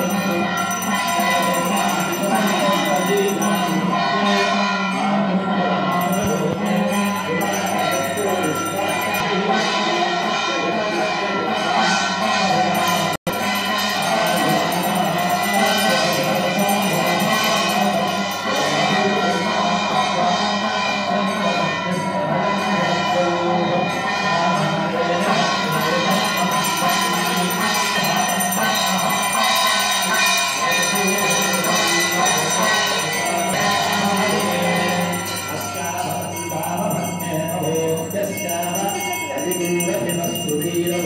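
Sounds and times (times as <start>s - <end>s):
temple bells ringing: 0.0s - 41.0s
voices singing together: 0.0s - 41.0s.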